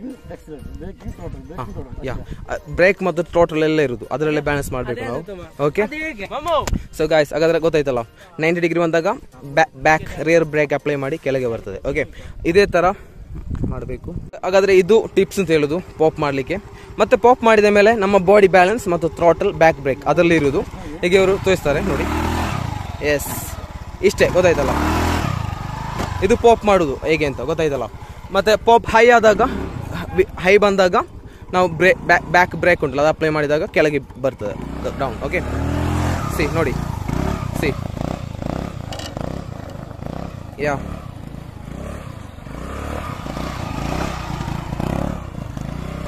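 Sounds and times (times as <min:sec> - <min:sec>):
scooter engine droning: 0:14.5 - 0:46.0.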